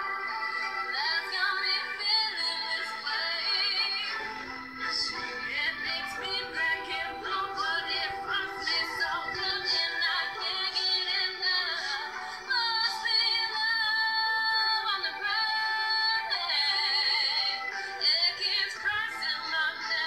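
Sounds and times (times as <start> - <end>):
woman singing pop ballad: 0.0 - 20.0.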